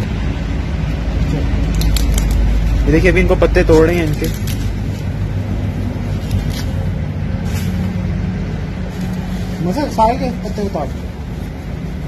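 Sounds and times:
engine running: 0.0 - 12.0
leaves snapping: 1.2 - 8.1.

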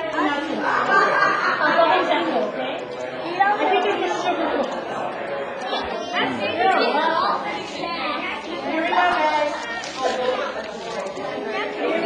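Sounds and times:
overlapping chatter of people: 0.0 - 12.0.

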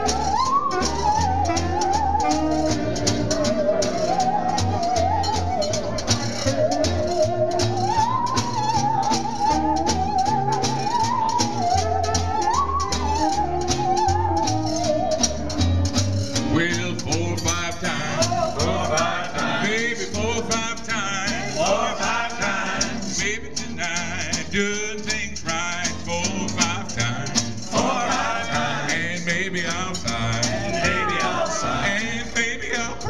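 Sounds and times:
tenor saxophone melody: 0.0 - 4.0
jazz band playing: 0.0 - 33.0
man singing: 16.4 - 33.0.

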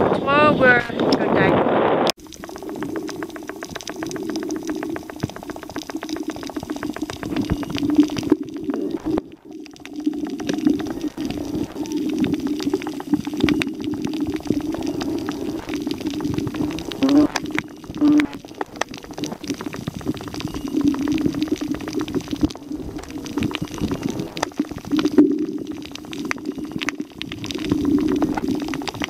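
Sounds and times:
low rumble of moving water: 0.0 - 29.0
underwater crackle of fine clicks: 2.1 - 29.0.

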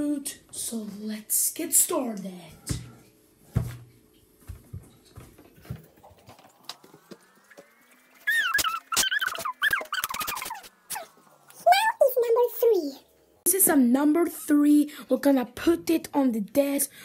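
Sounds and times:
high wavering voice-like call: 7.6 - 12.3.

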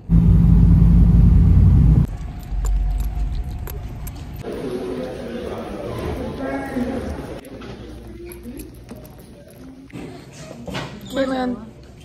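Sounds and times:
car interior rumble: 0.0 - 2.1.

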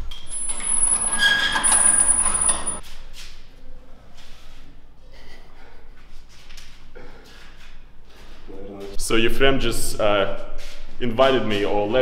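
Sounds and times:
metal grille door squealing: 0.0 - 2.8.

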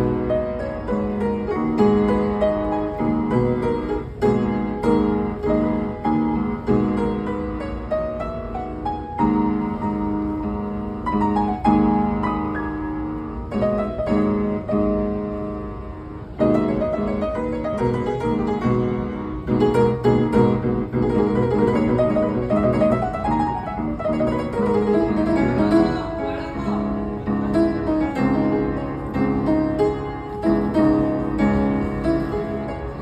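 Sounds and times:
upright piano playing: 0.0 - 33.0.

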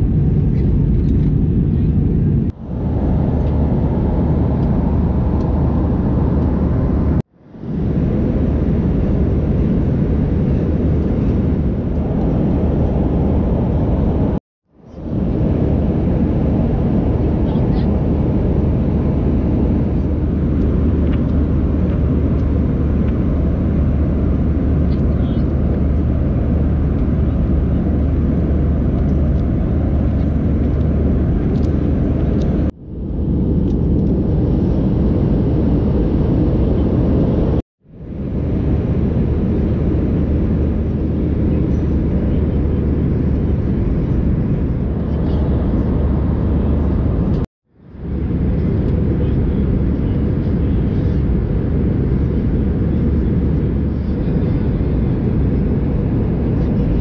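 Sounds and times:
airliner cabin rumble: 0.0 - 57.0.

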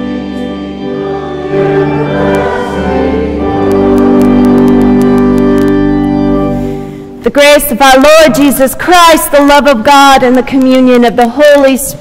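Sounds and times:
congregation singing a hymn: 0.0 - 6.7
organ chords: 0.0 - 9.6.

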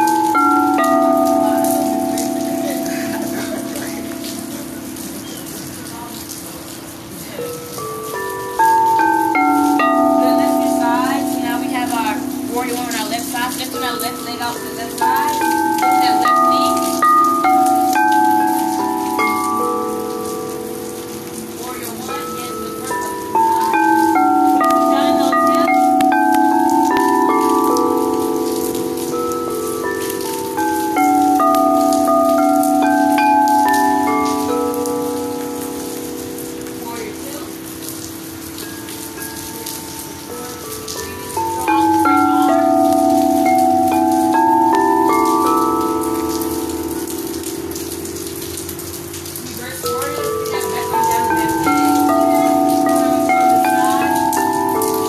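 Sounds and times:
crystal singing bowls ringing: 0.0 - 5.8, 7.4 - 55.0
rain hissing: 0.0 - 55.0.

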